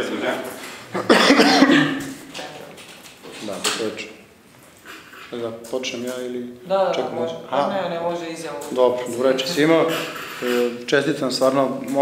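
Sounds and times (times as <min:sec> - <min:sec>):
man coughing: 0:01.0 - 0:02.1.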